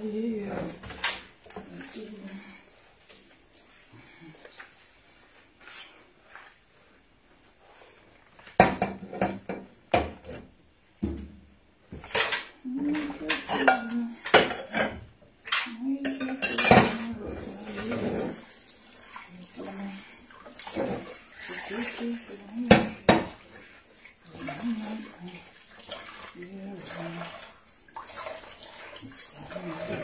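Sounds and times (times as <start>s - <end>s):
dishes and cutlery clattering: 12.0s - 18.5s
running water splashing: 16.0s - 30.0s.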